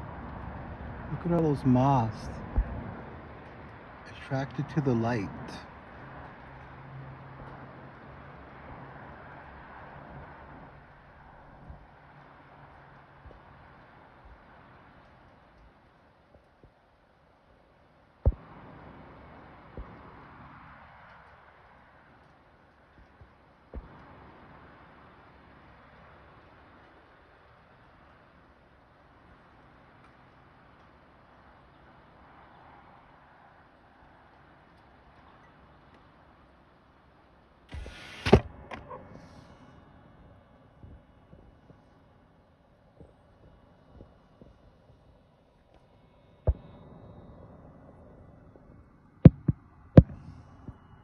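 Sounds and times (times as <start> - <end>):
faint low rumble: 0.0 - 51.0
even hiss: 37.7 - 38.5.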